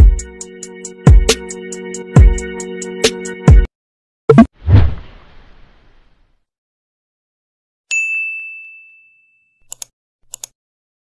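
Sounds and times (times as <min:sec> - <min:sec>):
bright bell ding: 0:07.9 - 0:09.6
mouse clicks: 0:09.7 - 0:10.6.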